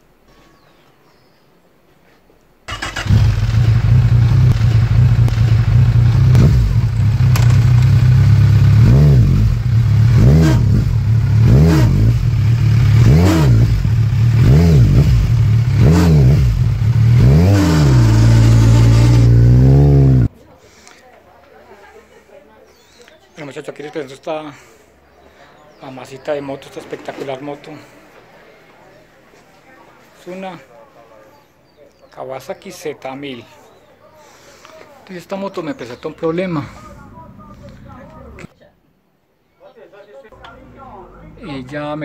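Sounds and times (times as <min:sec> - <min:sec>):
motorcycle engine revving: 0:02.7 - 0:20.3
motorcycle engine starting and idling: 0:02.7 - 0:20.3.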